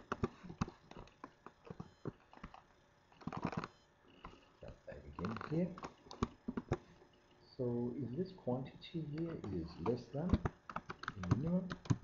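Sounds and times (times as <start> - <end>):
computer keyboard and mouse clicks: 9.2 - 12.0.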